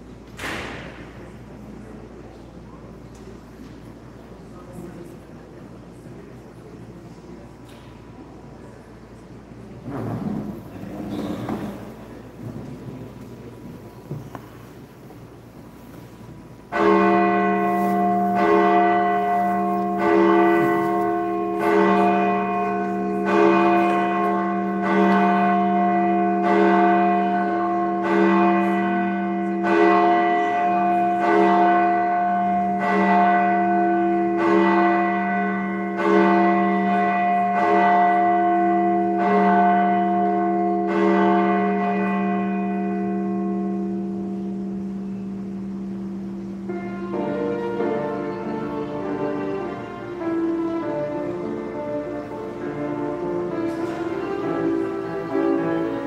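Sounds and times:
church bell tolling: 10.3 - 56.0.

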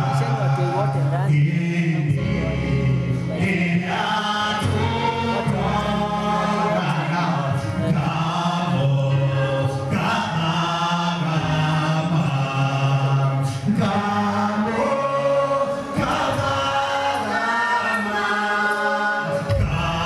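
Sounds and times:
man singing into a microphone: 0.0 - 17.2
voices singing along: 0.0 - 20.0.

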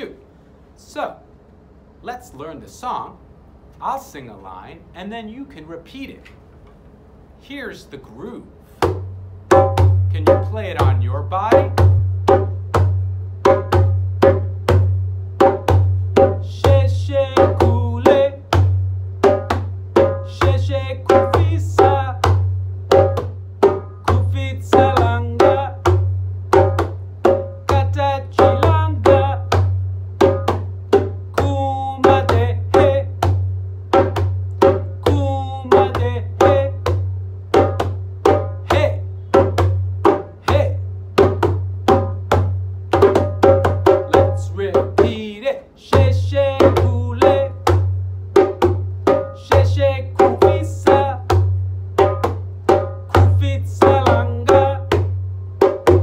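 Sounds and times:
hand drum groove: 8.8 - 56.0
man singing call lines: 10.1 - 11.8, 16.4 - 18.5, 20.2 - 22.3, 24.1 - 25.9, 27.6 - 29.6, 31.3 - 33.2, 35.0 - 36.9, 38.6 - 39.1, 40.4 - 40.8, 44.0 - 47.7, 49.3 - 51.4, 53.1 - 55.0.

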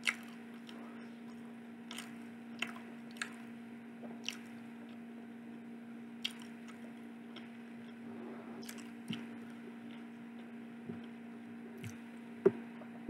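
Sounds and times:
person chewing food: 0.0 - 3.5, 4.1 - 5.0, 6.2 - 8.0, 8.6 - 12.0
low electrical hum: 0.0 - 13.0.

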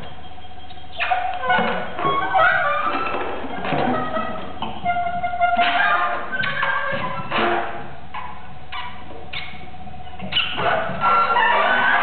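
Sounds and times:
burst of sliding pitches: 0.0 - 12.0
short high squeaks: 0.0 - 12.0
steady held tone: 0.0 - 12.0.

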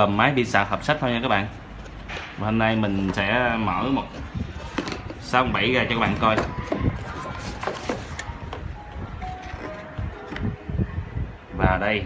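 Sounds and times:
faint background music: 0.0 - 12.0
cardboard box being handled: 6.0 - 8.6.

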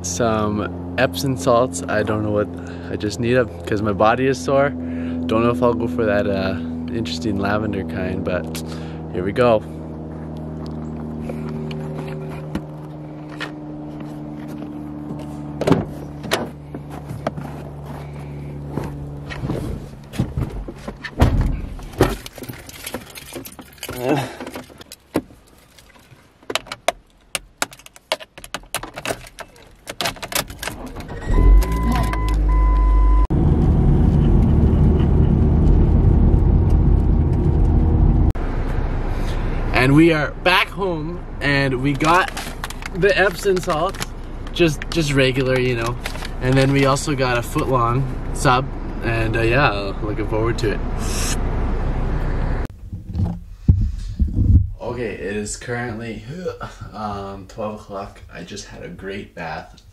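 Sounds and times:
car engine humming: 0.0 - 58.5
keys and door handle clicks: 26.6 - 32.4.

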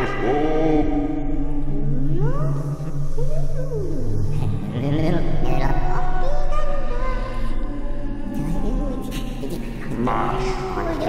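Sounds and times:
low electronic drone: 0.0 - 11.0.

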